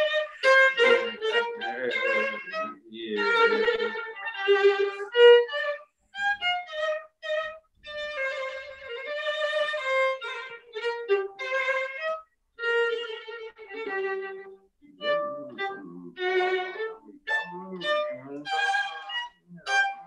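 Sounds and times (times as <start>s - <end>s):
solo violin playing: 0.0s - 20.0s.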